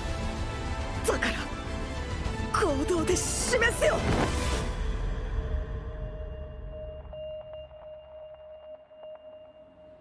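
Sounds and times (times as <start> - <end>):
faint higher tone: 6.0 - 10.0.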